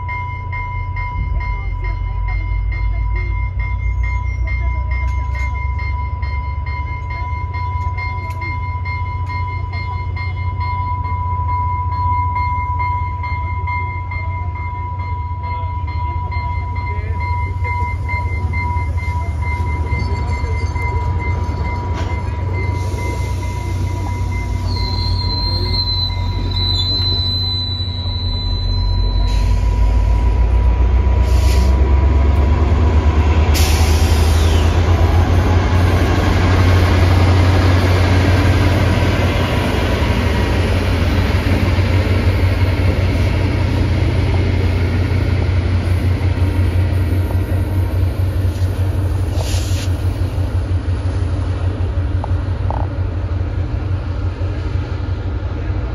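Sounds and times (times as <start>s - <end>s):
diesel locomotive rumble: 0.0s - 55.9s
train wheels squealing: 3.4s - 30.5s, 33.6s - 50.3s.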